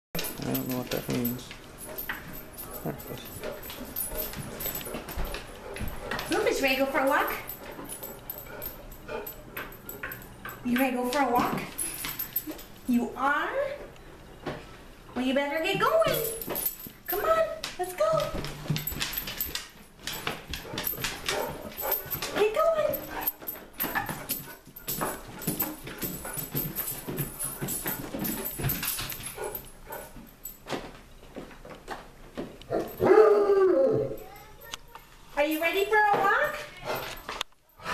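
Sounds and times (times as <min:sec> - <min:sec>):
footsteps on wooden stairs: 0:00.2 - 0:08.8, 0:15.7 - 0:33.0
dog claws tapping on wooden floor: 0:00.2 - 0:12.7, 0:15.2 - 0:33.1
dog whining: 0:32.7 - 0:34.4.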